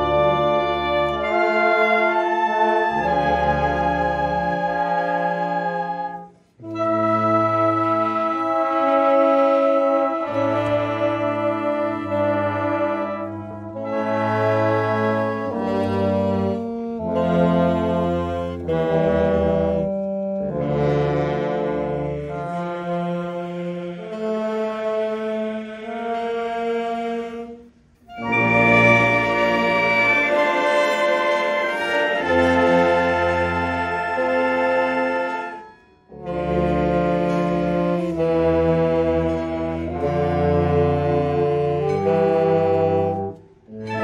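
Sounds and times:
wind band playing slow chords: 0.0 - 44.0.

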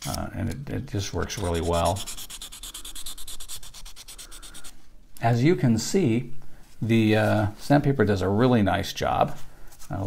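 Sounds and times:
sandpaper scratching on resin: 1.2 - 4.7.

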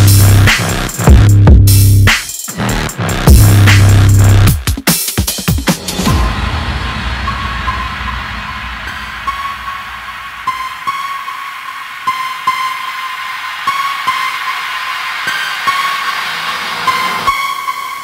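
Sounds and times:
bass: 0.0 - 4.6
sparse paired percussion hits: 5.3 - 11.4.

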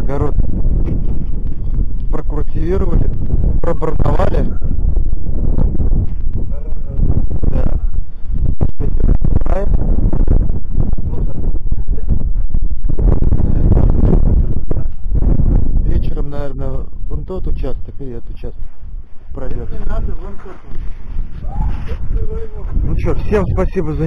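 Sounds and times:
wind buffeting microphone: 0.0 - 24.0
person's voice: 21.4 - 24.0.

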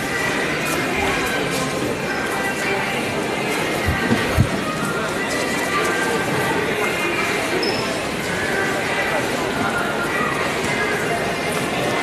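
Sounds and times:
indistinct chatter of shoppers: 0.0 - 12.0.

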